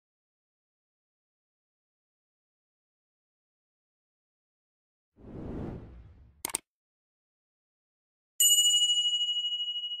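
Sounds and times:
bright bell ding: 8.4 - 10.0.

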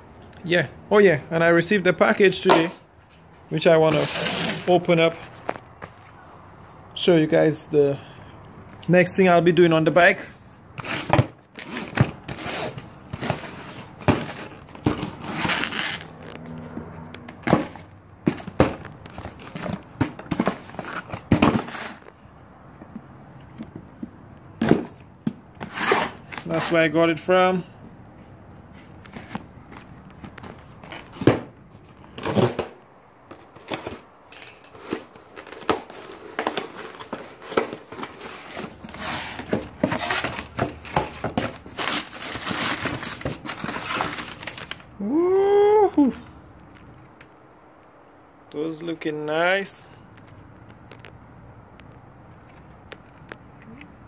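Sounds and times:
cardboard scraping and crinkling: 3.9 - 6.0, 10.8 - 22.1, 25.6 - 27.0, 28.7 - 44.9
packing tape tearing: 10.8 - 16.4, 25.6 - 26.8, 33.3 - 44.9.

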